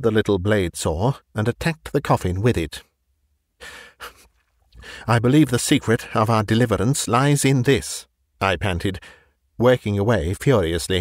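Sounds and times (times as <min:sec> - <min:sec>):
man speaking: 0:00.0 - 0:02.9, 0:04.9 - 0:11.0
man breathing: 0:03.6 - 0:05.1, 0:09.0 - 0:09.4.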